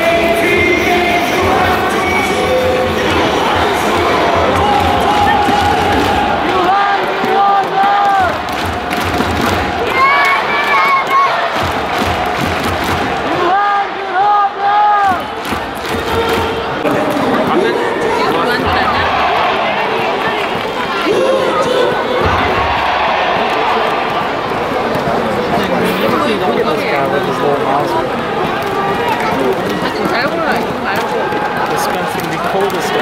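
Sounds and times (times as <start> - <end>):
stadium music with thudding beat: 0.0 - 13.6, 14.9 - 20.8, 22.0 - 25.0
crowd cheering and chanting: 0.0 - 33.0.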